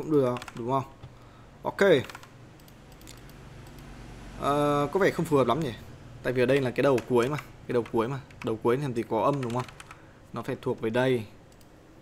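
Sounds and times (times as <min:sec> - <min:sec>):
computer keyboard keystrokes: 0:00.0 - 0:00.7, 0:02.0 - 0:03.9, 0:06.5 - 0:08.6, 0:09.2 - 0:10.0.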